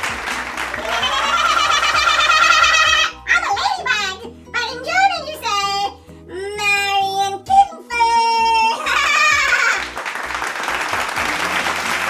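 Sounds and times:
light instrumental backing: 0.0 - 12.0.

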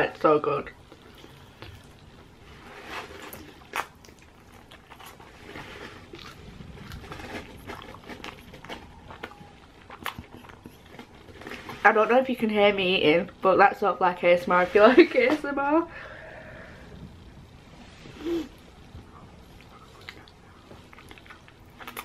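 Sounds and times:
chewing and wet mouth sounds: 0.7 - 11.9, 18.9 - 22.0.

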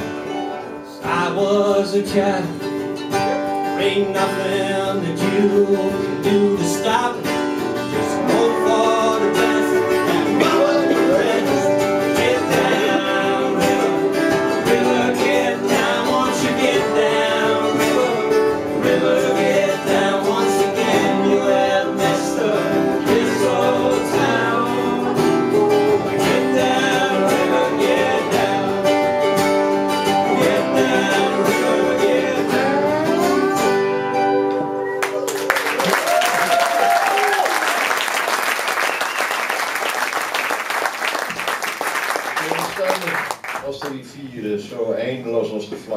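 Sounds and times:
strummed acoustic guitars: 0.0 - 35.8
sliding lap steel guitar: 7.6 - 35.4
audience applauding: 35.0 - 44.1.

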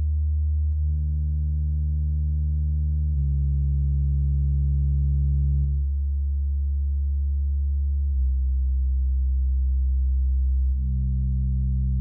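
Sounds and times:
low sine test tone: 0.0 - 12.0.

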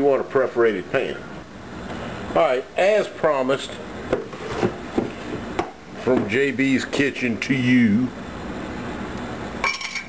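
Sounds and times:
metallic clink: 9.6 - 10.0.

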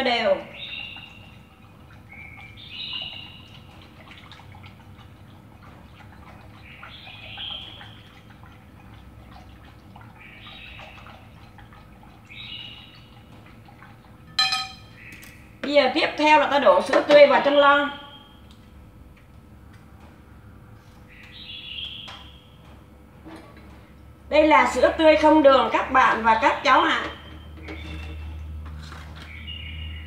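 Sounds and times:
sharp ringing clink: 14.3 - 15.0.

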